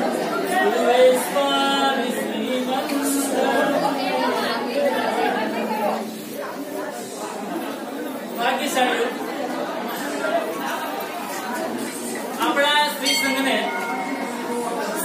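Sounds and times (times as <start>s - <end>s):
chatter echoing in a hall: 0.0s - 15.0s.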